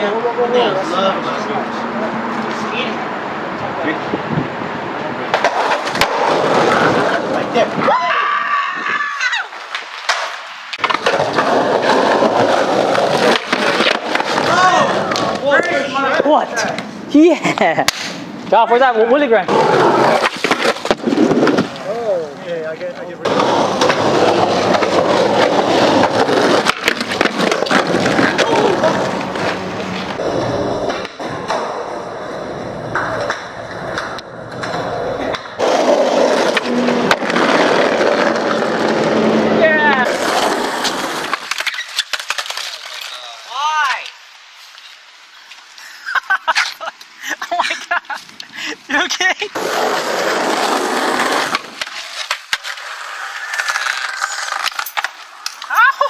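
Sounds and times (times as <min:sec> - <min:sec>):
skateboard wheels rolling on concrete: 0:00.0 - 0:56.0
skateboard clacks and landings: 0:05.3 - 0:07.3, 0:23.3 - 0:42.7.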